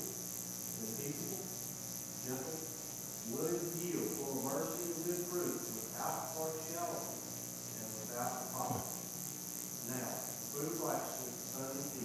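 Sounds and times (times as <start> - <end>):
steady high-pitched hiss: 0.0 - 12.0
man reading aloud: 3.2 - 7.1, 7.8 - 8.9.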